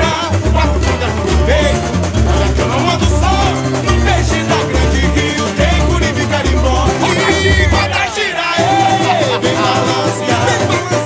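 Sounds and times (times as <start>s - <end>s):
deep steady bass beat: 0.0s - 8.1s
men singing: 0.0s - 11.0s
strummed guitars: 0.0s - 11.0s.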